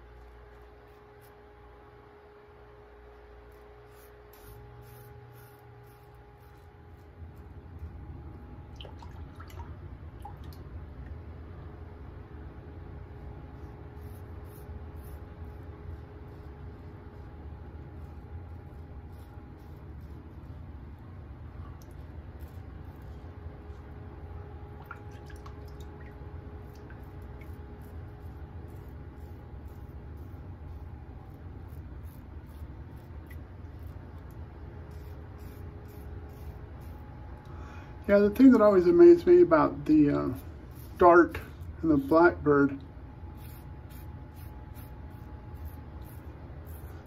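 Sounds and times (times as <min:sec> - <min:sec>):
razor scraping stubble: 0:00.0 - 0:01.6, 0:03.2 - 0:08.3, 0:13.2 - 0:24.1, 0:26.6 - 0:37.3, 0:38.3 - 0:42.6, 0:43.3 - 0:47.0
steady low hum: 0:00.0 - 0:47.0.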